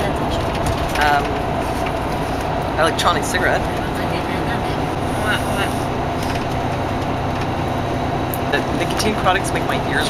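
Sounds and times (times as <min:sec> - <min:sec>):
faint voices: 0:00.0 - 0:06.5, 0:08.4 - 0:10.0
bus engine drone: 0:00.0 - 0:10.0.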